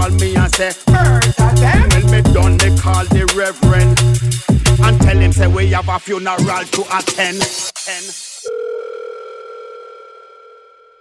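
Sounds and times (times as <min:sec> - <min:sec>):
two-pitch telephone tone: 0:08.5 - 0:11.0.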